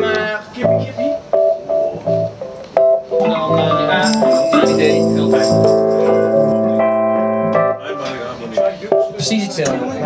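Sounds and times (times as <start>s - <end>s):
keyboard chord stabs: 0.6s - 9.1s.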